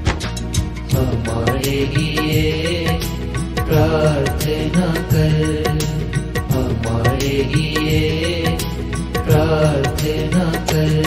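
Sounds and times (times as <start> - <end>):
instrumental devotional melody: 0.0 - 11.0
steady percussion beat: 0.0 - 11.0.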